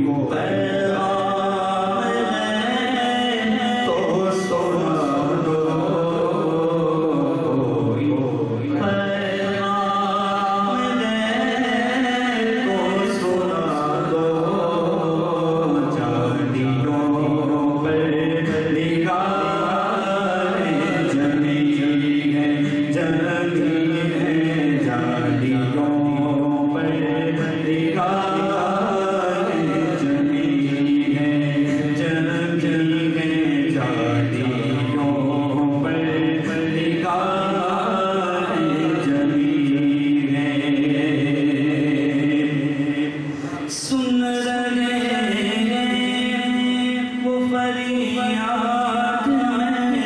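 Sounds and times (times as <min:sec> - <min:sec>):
man singing a devotional hymn: 0:00.0 - 0:50.0.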